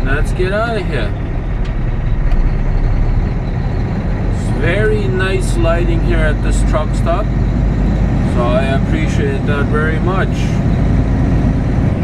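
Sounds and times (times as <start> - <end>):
truck diesel engine rumbling: 0.0 - 12.0.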